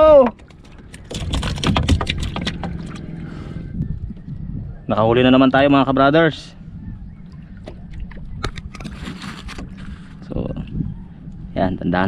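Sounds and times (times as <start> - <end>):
low rumble of hull and water: 0.0 - 12.0.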